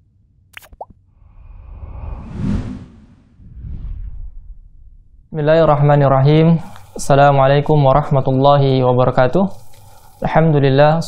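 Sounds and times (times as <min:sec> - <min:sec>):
whoosh: 0:01.2 - 0:06.0.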